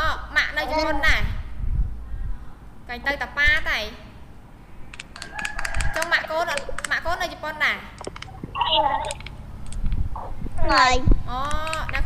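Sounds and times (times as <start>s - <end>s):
person speaking: 0.5s - 1.3s, 6.2s - 9.4s.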